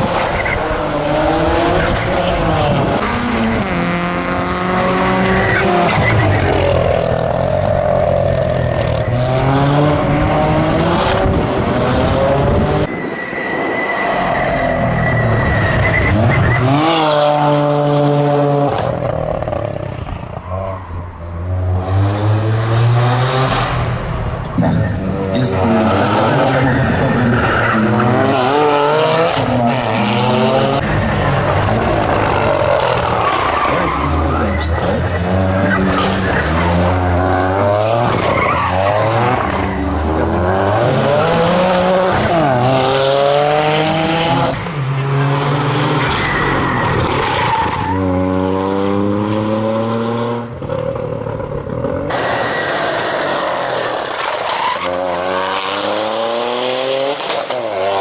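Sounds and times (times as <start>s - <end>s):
car engine revving hard: 0.0s - 12.9s, 31.5s - 50.5s, 52.1s - 58.0s.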